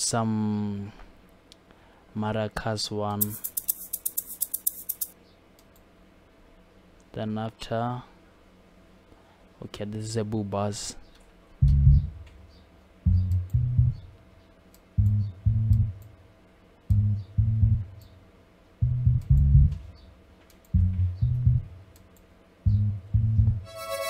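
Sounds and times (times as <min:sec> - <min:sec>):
synth bass notes: 0:11.6 - 0:14.1, 0:15.0 - 0:16.1, 0:16.9 - 0:18.0, 0:18.8 - 0:20.1, 0:20.7 - 0:21.8, 0:22.6 - 0:24.0.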